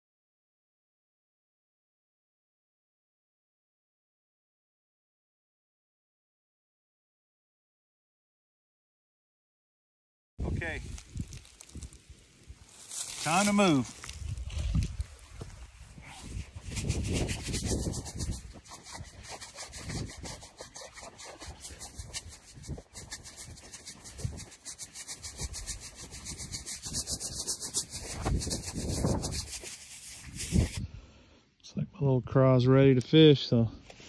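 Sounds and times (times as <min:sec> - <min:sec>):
footsteps through dry grass: 0:10.4 - 0:30.8.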